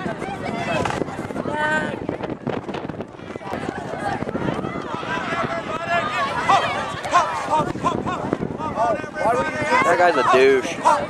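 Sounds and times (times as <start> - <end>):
outdoor crowd hubbub: 0.0 - 11.0
people talking and calling out: 0.0 - 11.0.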